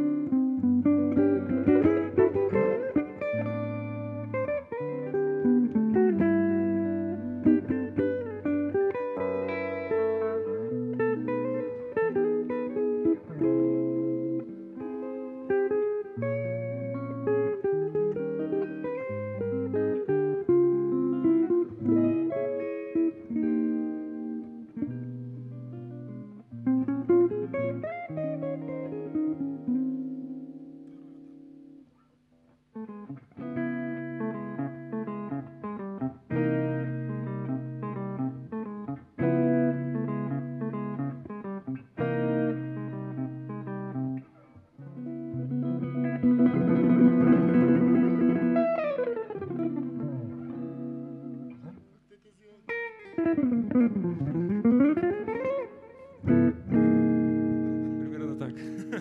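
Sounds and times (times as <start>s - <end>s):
acoustic guitar playing: 0.0s - 32.1s, 32.7s - 59.0s
electric guitar playing: 0.0s - 59.0s.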